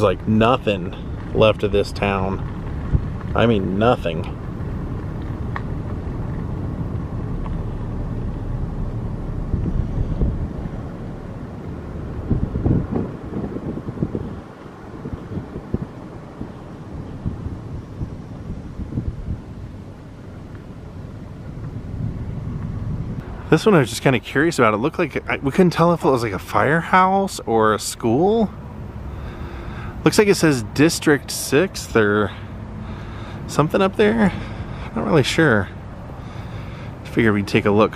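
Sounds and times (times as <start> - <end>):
car rolling on dirt road: 0.0 - 37.9
wind buffeting microphone: 0.0 - 37.9.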